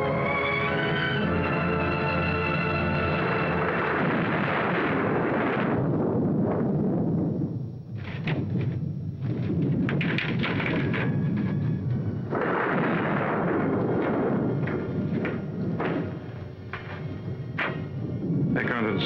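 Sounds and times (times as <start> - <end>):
rain and wind rushing: 1.7 - 19.0
thunder rumbling: 2.4 - 19.0
sharp cracks: 8.0 - 18.1.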